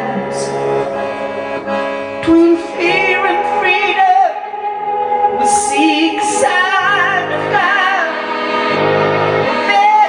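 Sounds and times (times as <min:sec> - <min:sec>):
accordion drone chords: 0:00.0 - 0:10.0.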